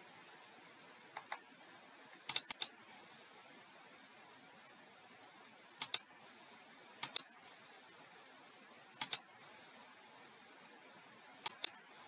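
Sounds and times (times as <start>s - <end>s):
computer mouse clicks: 2.2s - 2.8s, 5.8s - 6.1s, 7.0s - 7.3s, 9.0s - 9.3s, 11.4s - 11.8s.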